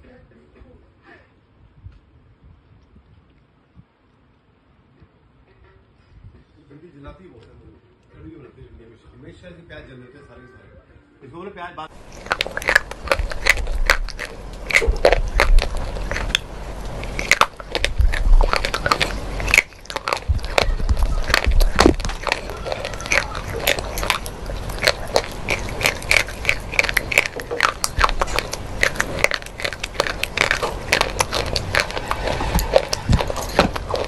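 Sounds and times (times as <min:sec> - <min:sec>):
crunchy chewing: 0:11.9 - 0:34.0.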